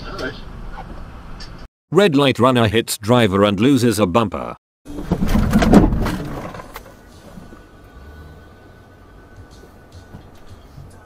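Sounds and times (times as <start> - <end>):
car collision: 4.9 - 7.7.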